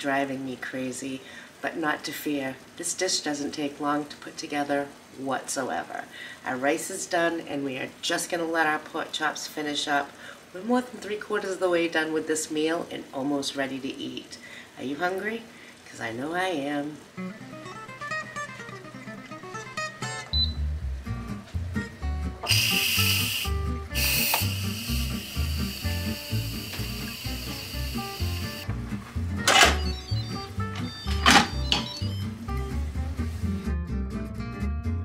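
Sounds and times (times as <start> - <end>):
background music with steady beat: 19.9 - 35.0
pressure cooker valve hissing: 22.4 - 28.7.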